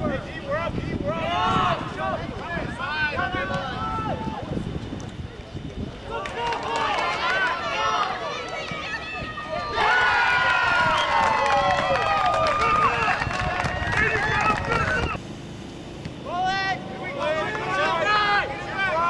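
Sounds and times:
people shouting: 1.1 - 4.5, 6.0 - 15.2, 16.3 - 19.0
crowd cheering and yelling: 6.0 - 15.2, 16.2 - 19.0.

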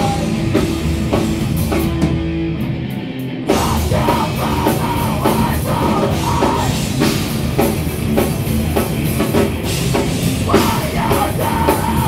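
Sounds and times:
drums striking steady beat: 0.0 - 2.7, 3.5 - 12.0
live rock band playing: 0.0 - 12.0.

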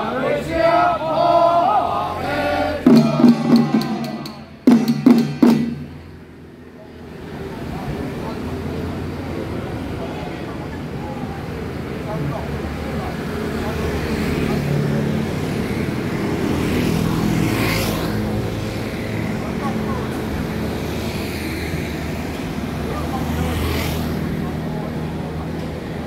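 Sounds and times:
men chanting in unison: 0.0 - 4.6
passing traffic: 0.0 - 26.0.

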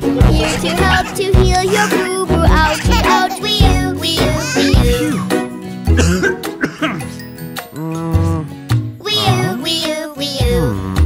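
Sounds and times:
children's song music: 0.0 - 11.0
man coughing: 0.2 - 2.0, 4.5 - 5.3, 5.9 - 7.2.

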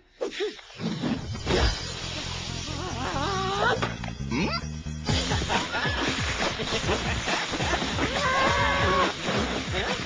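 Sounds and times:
background music: 1.2 - 10.0.

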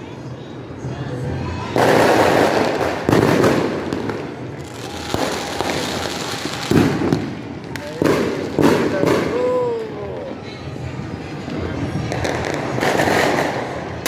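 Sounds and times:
fireworks bangs with rolling rumble: 0.0 - 10.3, 11.0 - 14.0.

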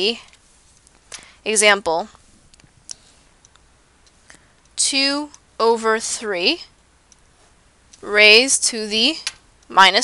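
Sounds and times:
faint clicks: 2.1 - 5.5.

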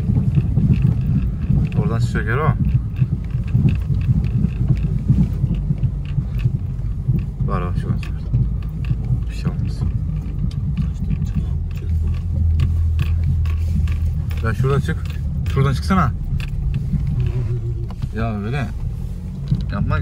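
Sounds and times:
car engine hum: 0.0 - 20.0
car jolting over rough ground: 0.0 - 20.0.

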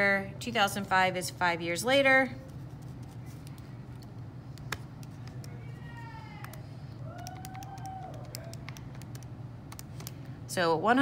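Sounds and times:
faint wavering hum: 0.0 - 11.0
calculator keys clicking: 7.2 - 10.2.

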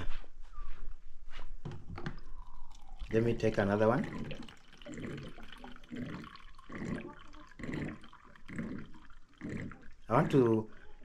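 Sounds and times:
water pouring into cup: 2.0 - 11.0.

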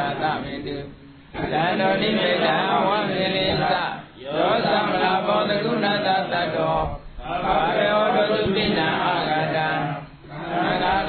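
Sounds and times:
monk chanting: 0.0 - 11.0.

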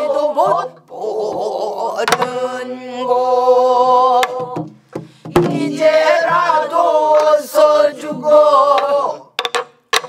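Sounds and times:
group singing in unison: 0.0 - 9.4.

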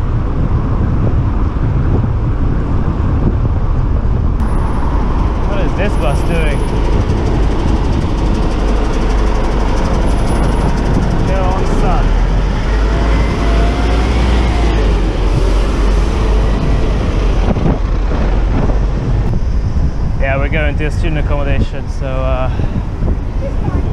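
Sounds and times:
buses and cars passing close: 0.0 - 20.6
city traffic rumble: 0.0 - 23.9.

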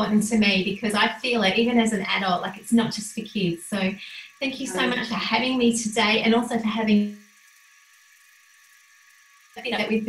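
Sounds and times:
woman speaking: 0.0 - 7.2, 9.6 - 10.0
faint high hiss: 2.2 - 7.3.

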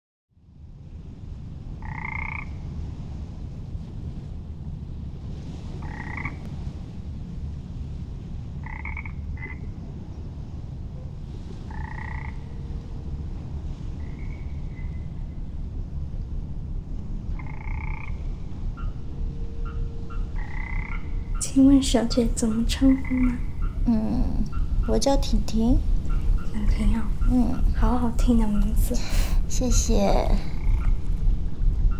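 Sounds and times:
steady low rumble: 0.3 - 31.9
frog croaking: 1.8 - 2.6, 5.8 - 6.4, 8.6 - 9.7, 11.7 - 12.7, 17.3 - 19.0, 19.6 - 27.8, 29.7 - 31.0.

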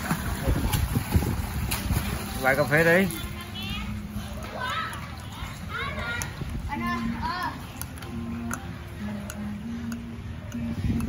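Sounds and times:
children calling: 3.2 - 8.3.

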